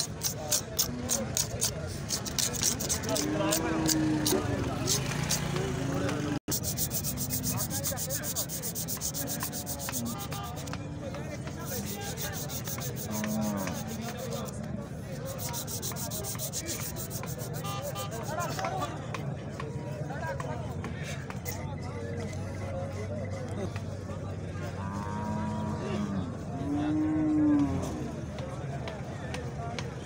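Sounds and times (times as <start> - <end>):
hand saw cutting horn: 0.0 - 5.6, 6.4 - 10.8, 11.5 - 14.6, 15.2 - 18.7.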